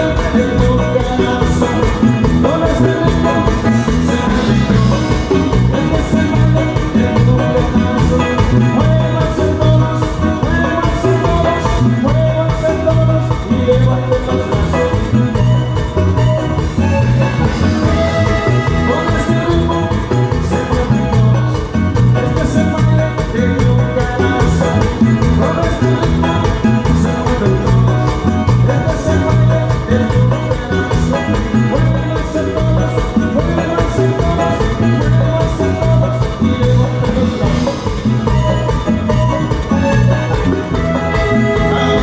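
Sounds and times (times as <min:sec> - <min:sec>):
live dance band playing: 0:00.0 - 0:42.0
pulsing bass line: 0:00.0 - 0:42.0.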